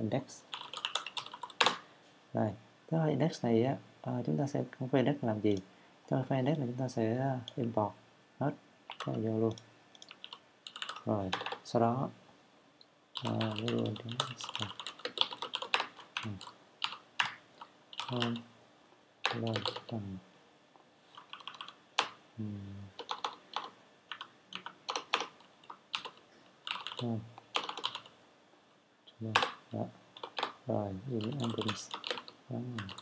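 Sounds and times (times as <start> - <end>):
person speaking: 2.3 - 10.2, 10.9 - 12.2, 13.2 - 16.6, 18.0 - 18.6, 19.2 - 20.3, 22.4 - 23.2, 26.8 - 28.0, 29.1 - 33.0.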